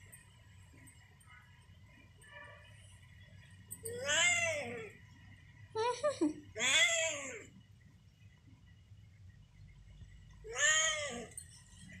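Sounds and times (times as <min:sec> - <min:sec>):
cat meowing: 0:10.5 - 0:11.3.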